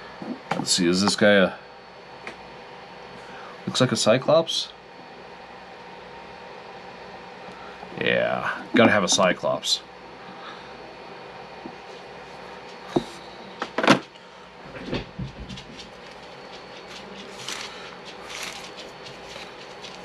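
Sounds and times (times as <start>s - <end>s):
packaging rustling: 15.8s - 20.0s.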